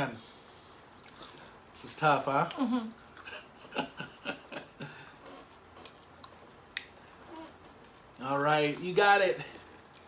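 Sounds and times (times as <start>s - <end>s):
chewing and crunching candy: 4.9s - 10.0s.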